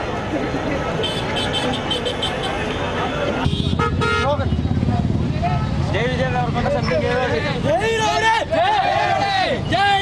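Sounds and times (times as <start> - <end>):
crowd chatter: 0.0 - 10.0
motor traffic: 0.0 - 10.0
vehicle horns tooting: 1.0 - 4.8.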